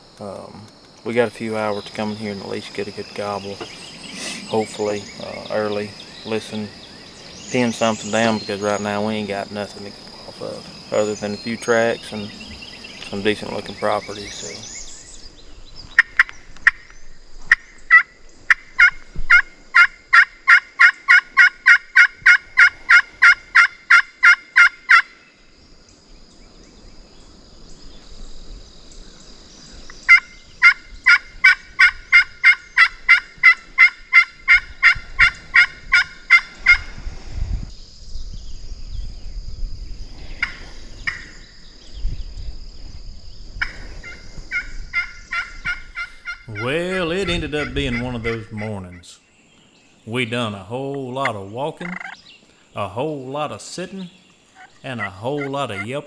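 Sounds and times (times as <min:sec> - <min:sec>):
box turkey call yelps: 0:17.5 - 0:25.1, 0:30.1 - 0:36.8, 0:44.0 - 0:49.1, 0:51.8 - 0:52.2, 0:54.6 - 0:55.9.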